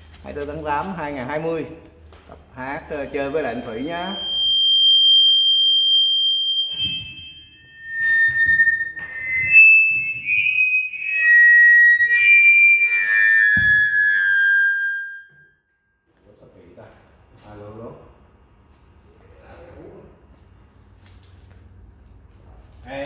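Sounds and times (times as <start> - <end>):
microphone feedback squealing: 2.6 - 15.6.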